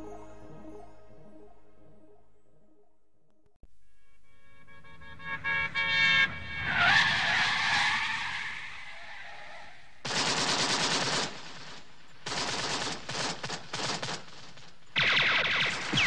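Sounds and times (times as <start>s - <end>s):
car tires skidding: 5.9s - 9.8s
machine-gun fire: 10.0s - 16.0s.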